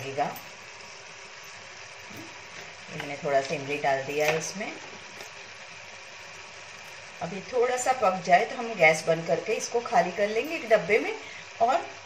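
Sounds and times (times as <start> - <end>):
onions sizzling in hot oil: 0.0 - 10.2.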